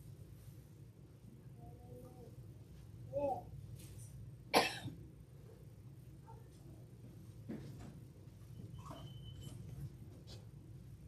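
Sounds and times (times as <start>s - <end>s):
faint room hum: 0.0s - 11.0s
person coughing: 4.5s - 5.0s.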